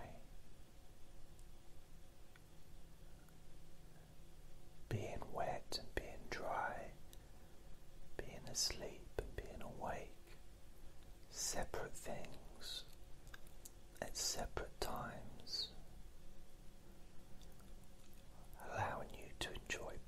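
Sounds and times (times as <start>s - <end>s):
man whispering: 0.0s - 0.3s, 4.8s - 7.2s, 8.1s - 10.4s, 11.3s - 13.0s, 13.9s - 15.9s, 18.3s - 20.0s.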